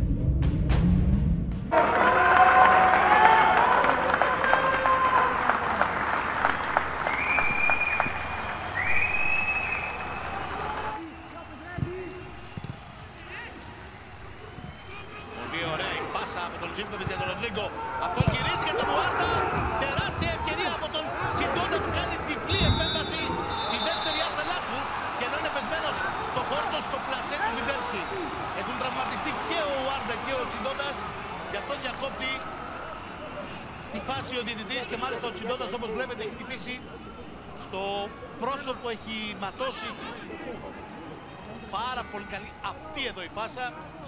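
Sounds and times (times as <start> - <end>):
players shouting: 1.7 - 44.0
rhythmic hand clapping: 2.6 - 8.8
high whistle blasts: 7.0 - 12.6, 22.5 - 24.7.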